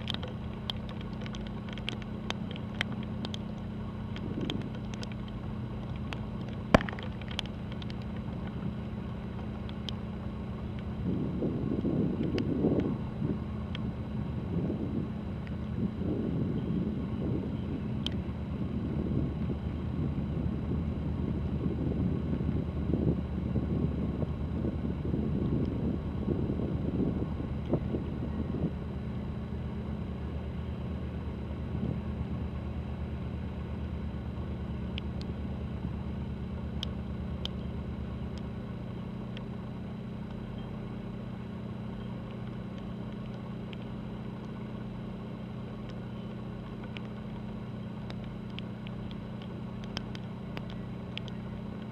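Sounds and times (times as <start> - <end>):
wind buffeting microphone: 0.0 - 33.3
ship engines droning: 0.0 - 51.9.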